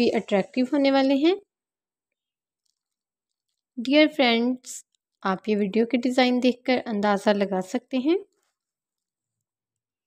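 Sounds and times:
woman speaking: 0.0s - 1.5s, 3.8s - 8.4s.

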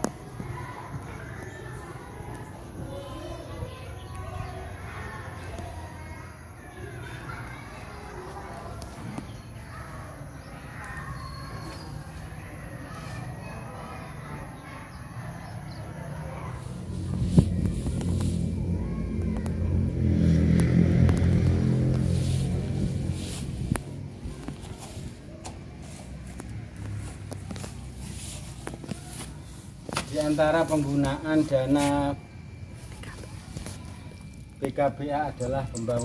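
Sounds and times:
low background rumble: 16.6s - 24.4s
low engine hum: 16.6s - 29.8s.

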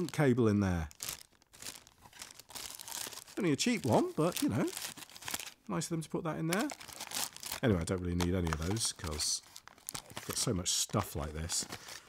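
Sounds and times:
plastic bag crinkling: 0.0s - 5.6s, 6.5s - 12.0s.

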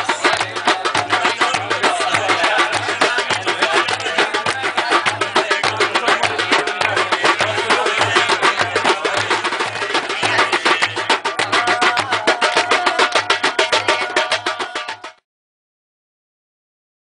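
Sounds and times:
deep beat: 0.0s - 15.2s
fast hand-drum strikes: 0.0s - 15.2s.

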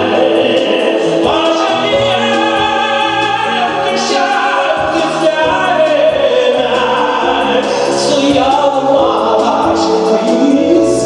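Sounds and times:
instrumental backing music: 0.0s - 11.0s
man singing into a microphone: 0.0s - 11.0s.

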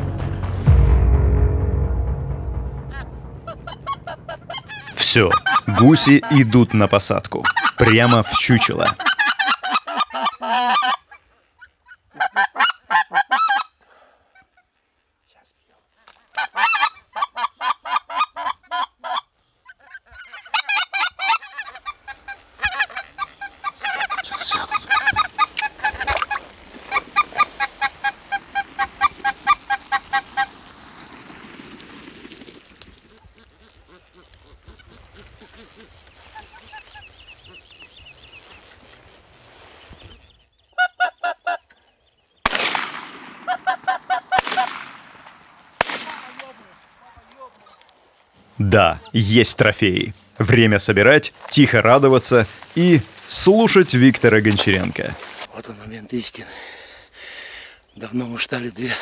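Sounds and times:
geese honking: 2.8s - 13.8s, 16.4s - 39.8s, 40.7s - 41.8s, 43.0s - 45.4s
shotgun shots: 42.5s - 47.0s.

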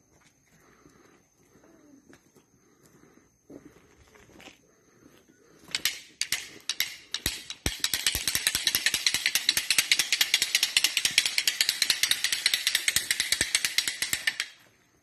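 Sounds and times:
fast sharp clicks: 5.7s - 14.6s.

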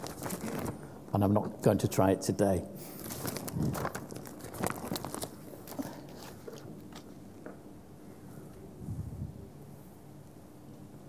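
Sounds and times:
plastic sleeve rustling and crinkling: 0.0s - 0.9s, 2.8s - 7.2s.

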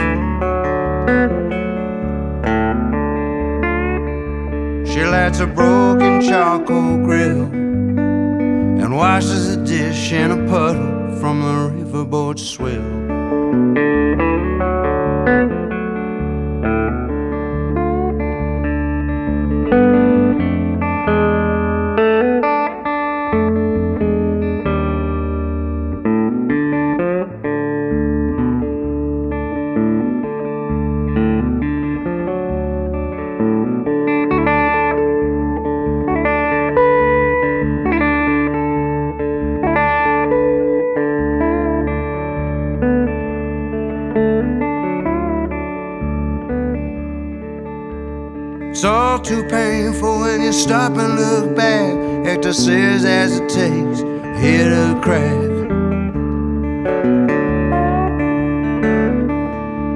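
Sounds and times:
sustained bass: 0.0s - 22.0s, 37.1s - 59.9s
guitar melody with bent notes: 0.0s - 59.9s.

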